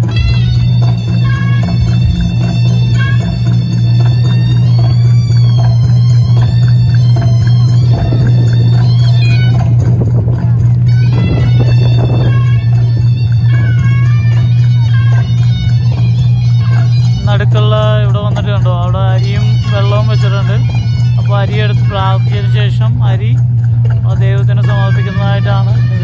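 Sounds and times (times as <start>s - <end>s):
traditional dance music: 0.0s - 26.0s.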